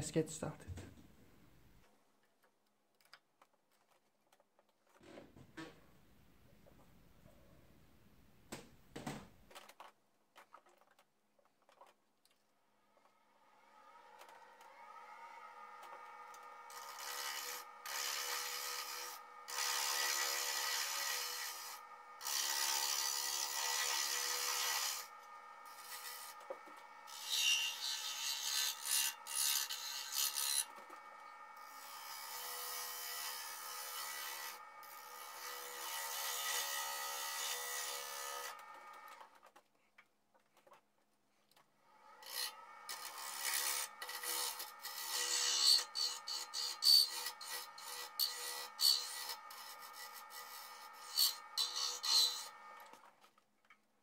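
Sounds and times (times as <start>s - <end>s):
lathe motor whine: 13.6s - 39.2s
lathe tool scraping wood: 13.8s - 39.3s, 42.2s - 53.3s.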